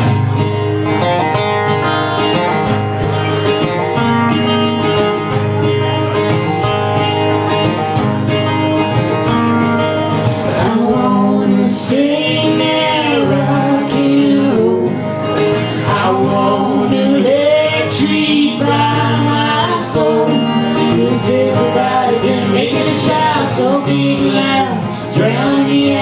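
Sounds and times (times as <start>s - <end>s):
acoustic guitars strumming: 0.0s - 26.0s.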